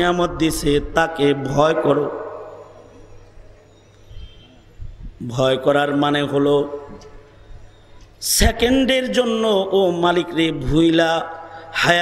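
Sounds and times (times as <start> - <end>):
amplified chanted preaching echo: 0.0 - 3.1, 8.2 - 12.0.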